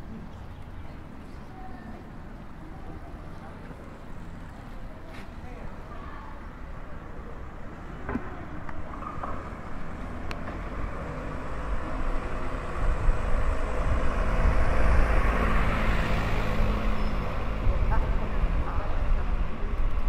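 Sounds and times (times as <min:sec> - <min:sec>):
motor vehicle passing: 0:08.4 - 0:19.8.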